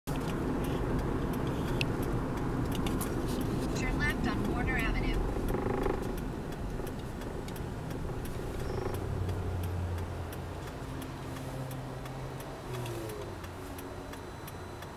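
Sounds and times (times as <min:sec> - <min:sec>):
road and engine rumble in car: 0:00.1 - 0:14.9
person speaking: 0:03.7 - 0:05.2.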